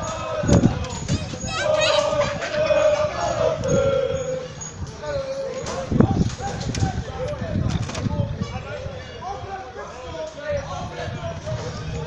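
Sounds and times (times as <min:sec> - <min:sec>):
young men singing a chant: 0:00.0 - 0:07.6
vehicle and road rumble: 0:00.0 - 0:12.0.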